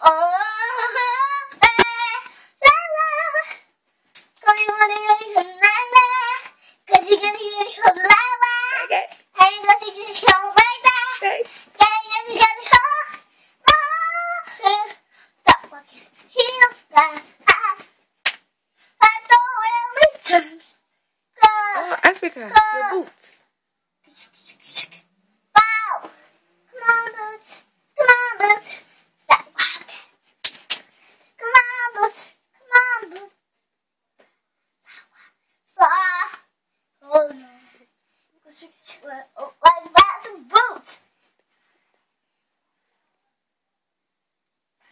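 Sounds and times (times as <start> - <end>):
girl singing: 0.0 - 18.0, 18.8 - 20.8, 21.4 - 23.5, 24.1 - 30.2, 31.4 - 33.4, 34.9 - 41.1.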